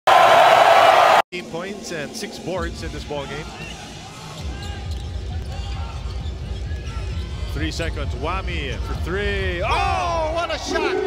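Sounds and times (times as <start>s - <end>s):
arena crowd noise: 0.1s - 1.6s.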